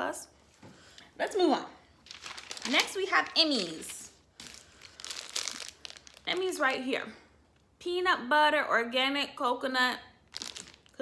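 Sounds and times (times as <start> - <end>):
plastic wrapper crinkling: 2.0 - 6.8, 10.2 - 11.0.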